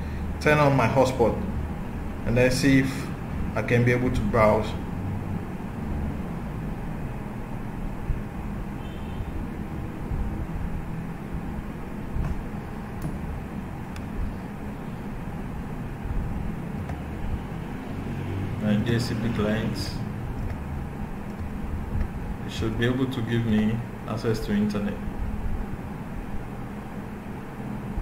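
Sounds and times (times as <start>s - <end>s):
low background rumble: 0.0s - 28.0s.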